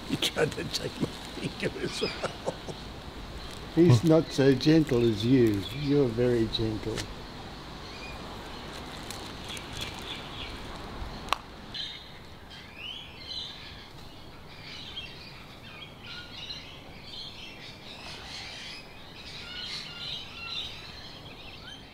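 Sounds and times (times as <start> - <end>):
birds chirping: 0.0 - 21.9.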